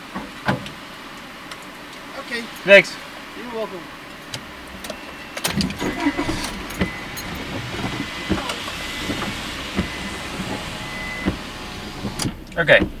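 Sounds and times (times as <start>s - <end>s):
car engine starting and idling: 4.0s - 13.0s.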